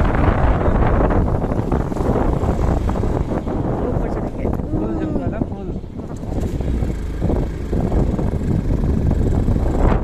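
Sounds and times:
motorbike engine: 0.0s - 10.0s
road noise: 0.0s - 10.0s
wind noise on microphone: 0.0s - 10.0s.

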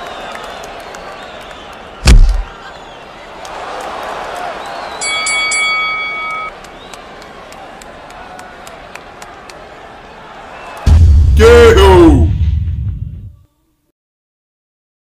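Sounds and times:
arena crowd noise: 0.0s - 12.3s
boxing ring bell ringing: 5.0s - 6.5s.

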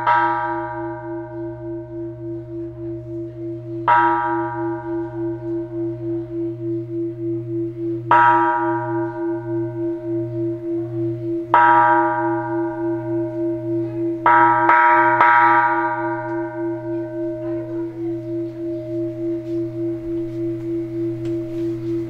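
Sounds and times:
large temple bell struck: 0.0s - 22.0s.

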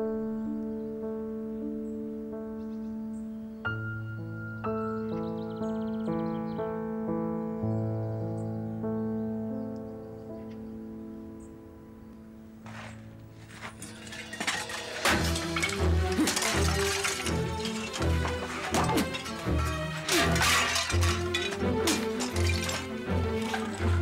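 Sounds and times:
crashing and breaking impacts: 13.4s - 24.0s.

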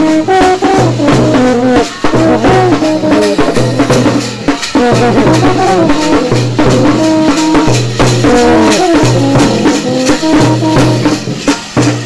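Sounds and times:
drum beat: 0.0s - 12.0s
euphoniums playing melody: 0.1s - 11.3s
shaker rattle: 1.8s - 12.0s.

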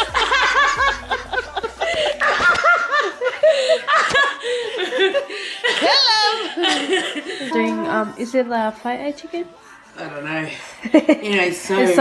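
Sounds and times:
woman laughing hard: 0.0s - 7.5s.

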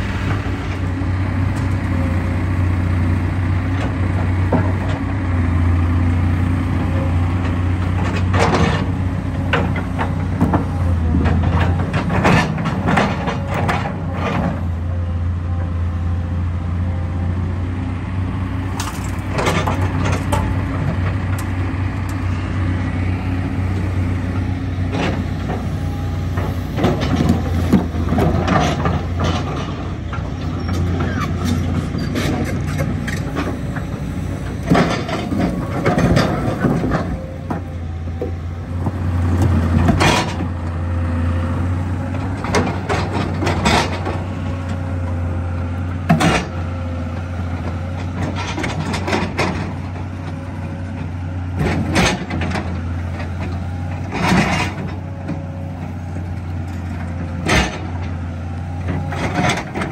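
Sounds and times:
excavator diesel engine running: 0.0s - 59.9s
dirt clattering into metal trailer: 34.6s - 37.2s.

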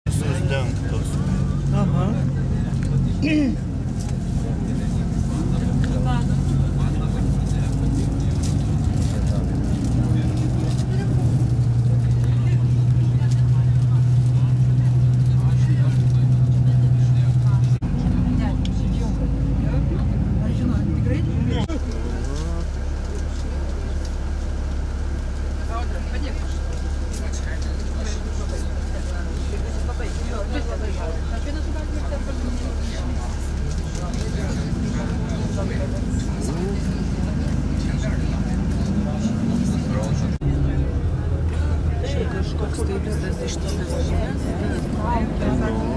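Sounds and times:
road noise: 0.0s - 45.9s
vehicle engine hum: 0.0s - 45.9s.

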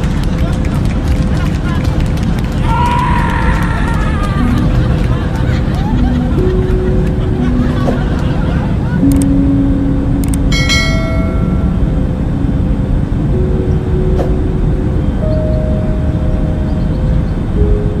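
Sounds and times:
low rumbling ambience: 0.0s - 18.0s
click: 10.2s - 10.4s
bright ringing chime: 10.5s - 11.9s.

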